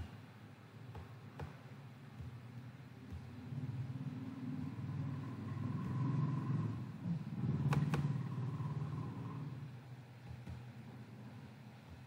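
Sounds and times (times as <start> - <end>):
low background rumble: 1.9 - 12.0.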